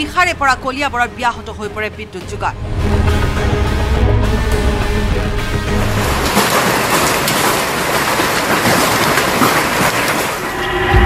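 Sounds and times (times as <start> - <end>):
heavy rain and hail: 5.0 - 11.0.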